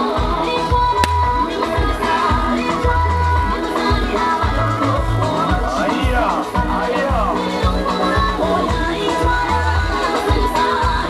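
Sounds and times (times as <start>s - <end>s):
song with singing voice: 0.0s - 11.0s.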